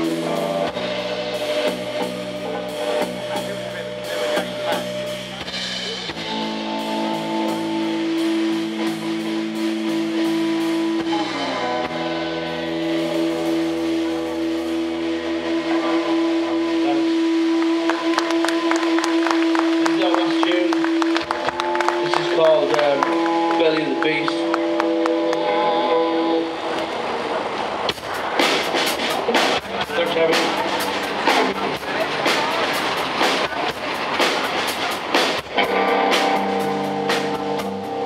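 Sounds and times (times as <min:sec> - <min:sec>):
electric guitars droning chord: 0:00.0 - 0:38.0
live rock band playing: 0:00.0 - 0:38.0.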